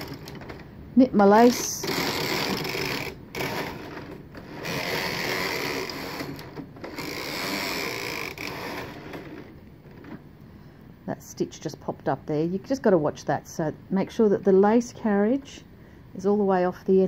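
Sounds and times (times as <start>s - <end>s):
knitting machine carriage running: 0.0s - 0.7s, 1.3s - 10.2s.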